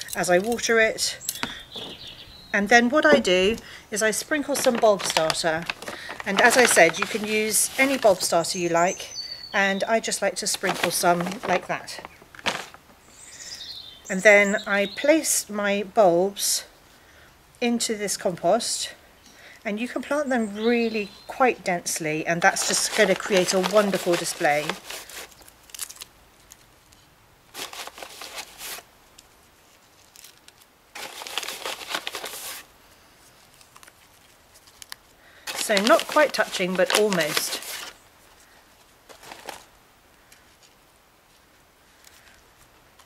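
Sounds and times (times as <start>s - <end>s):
soft rustle: 0.0s - 9.0s, 10.2s - 13.3s, 22.4s - 43.0s
small bird singing: 0.5s - 2.9s, 8.6s - 10.3s, 13.0s - 15.3s, 20.2s - 21.6s.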